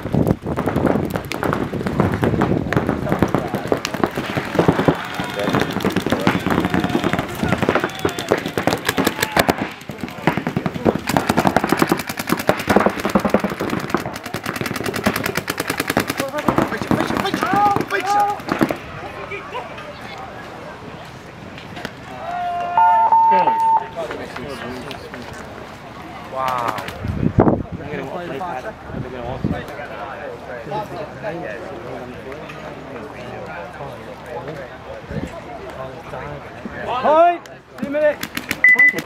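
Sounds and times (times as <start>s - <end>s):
paintball markers firing: 0.6s - 18.8s
people shouting: 4.7s - 9.7s, 17.2s - 18.5s, 22.1s - 24.0s.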